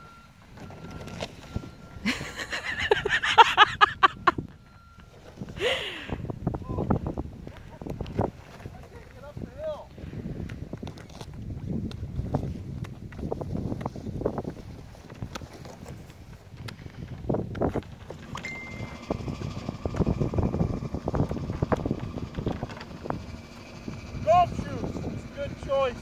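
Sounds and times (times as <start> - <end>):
wind rumbling on microphone: 0.0 - 26.0.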